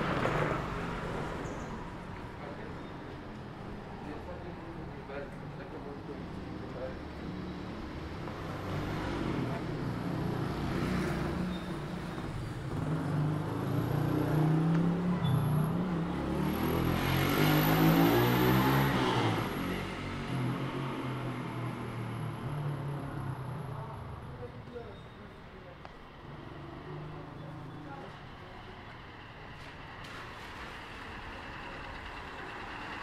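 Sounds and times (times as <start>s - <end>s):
motor vehicle passing: 7.2s - 24.4s.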